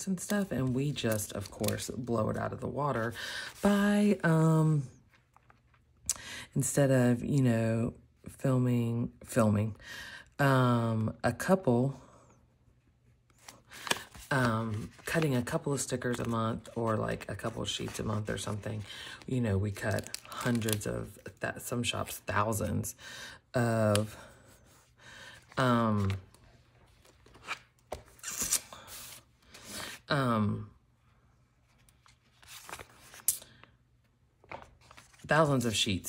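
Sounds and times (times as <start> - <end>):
paper rustling and scraping: 13.4 - 18.9, 31.6 - 33.7, 34.4 - 35.7.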